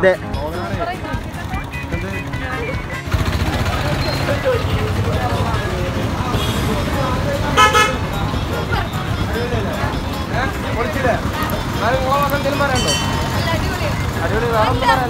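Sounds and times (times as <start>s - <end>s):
bus engine running: 0.0s - 15.0s
people's voices: 0.0s - 15.0s
vehicle horn tooting: 7.5s - 8.3s, 12.7s - 13.8s.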